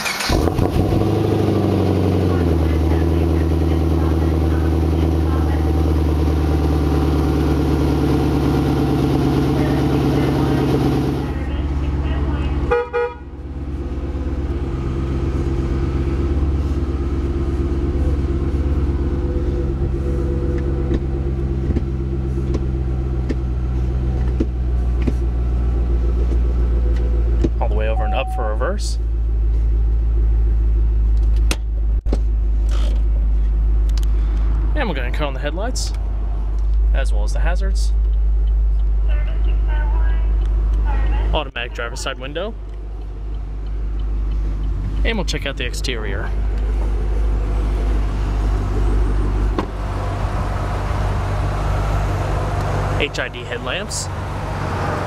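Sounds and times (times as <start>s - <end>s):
car engine starting and idling: 0.0s - 55.0s.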